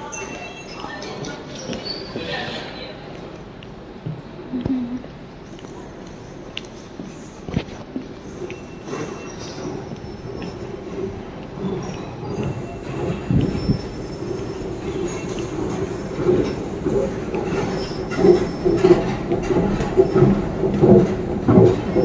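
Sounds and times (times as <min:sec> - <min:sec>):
train squeals: 0:00.0 - 0:02.8, 0:08.3 - 0:22.0
underground station rumble: 0:00.0 - 0:22.0.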